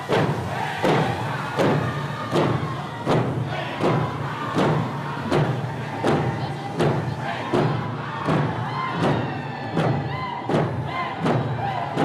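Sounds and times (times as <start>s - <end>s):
crowd murmur: 0.0s - 12.0s
group of voices singing: 0.0s - 12.0s
hand drums steady beat: 0.0s - 12.0s.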